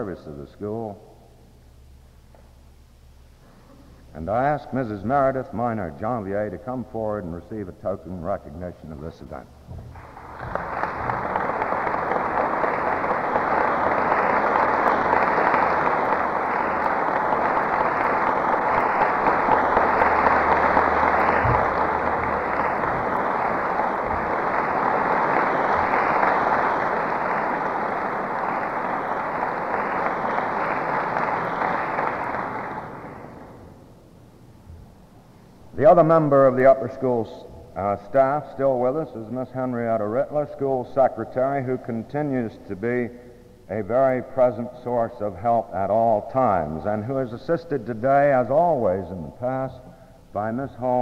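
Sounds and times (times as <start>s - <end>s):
audience applauding: 9.9s - 33.8s.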